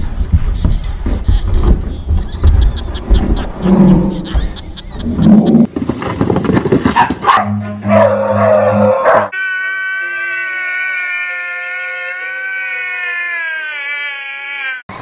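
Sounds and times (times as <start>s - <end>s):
man wailing: 9.4s - 14.9s.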